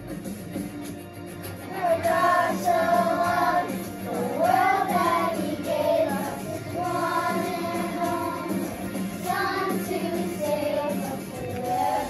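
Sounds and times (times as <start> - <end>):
children singing together: 1.7 - 12.0.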